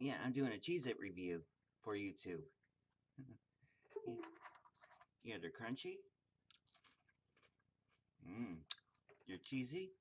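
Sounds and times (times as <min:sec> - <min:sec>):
cracker being chewed: 0:06.4 - 0:08.1.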